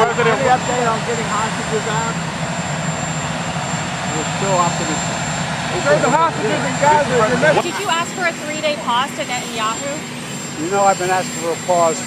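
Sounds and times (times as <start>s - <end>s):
aircraft turbine engines running: 0.0s - 12.0s
high-pitched whine: 0.0s - 12.0s
person asking a question: 6.4s - 9.8s.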